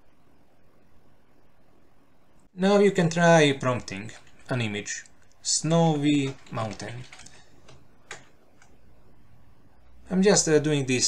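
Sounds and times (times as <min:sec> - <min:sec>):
computer keyboard keystrokes: 0:06.0 - 0:08.7.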